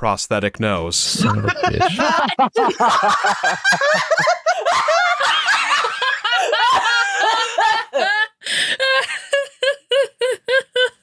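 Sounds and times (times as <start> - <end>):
people laughing together: 1.1 - 11.0.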